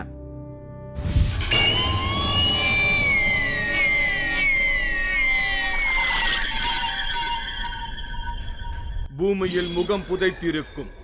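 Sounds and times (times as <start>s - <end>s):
descending electronic tones: 1.3s - 10.1s.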